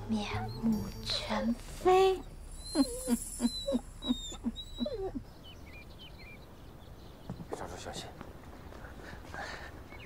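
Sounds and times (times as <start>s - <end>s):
small dog yelping: 2.7s - 5.2s.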